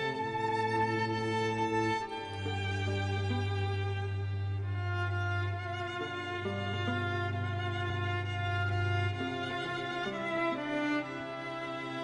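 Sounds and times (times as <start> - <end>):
violin melody: 0.0 - 12.0.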